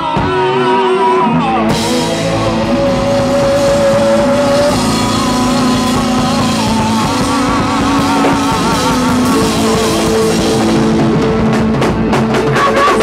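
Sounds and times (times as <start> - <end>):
guitar lead with vibrato: 0.0 - 13.0
live rock band playing: 0.0 - 13.0.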